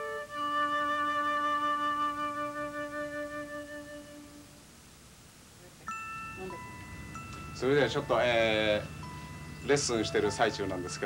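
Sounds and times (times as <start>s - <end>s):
held flute note: 0.0s - 4.6s
bright bell-like chime: 5.9s - 11.0s.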